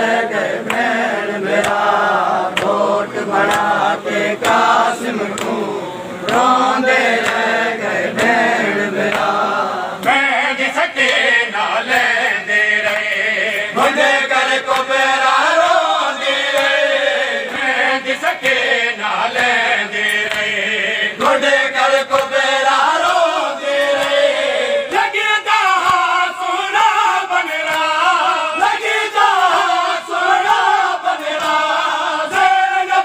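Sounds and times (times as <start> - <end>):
men chanting in unison: 0.0 - 33.0
hands slapping chests: 2.5 - 2.8, 3.4 - 3.7, 5.3 - 5.6, 7.2 - 7.5, 9.1 - 9.3, 19.3 - 20.5.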